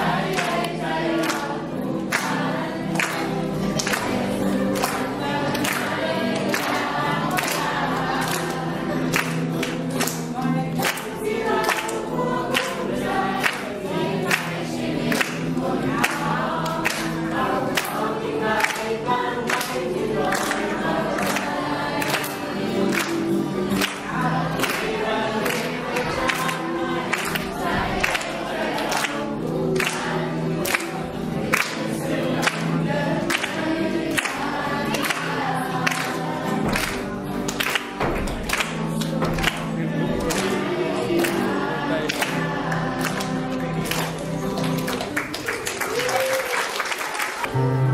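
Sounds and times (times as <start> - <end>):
children singing in chorus: 0.0 - 45.2.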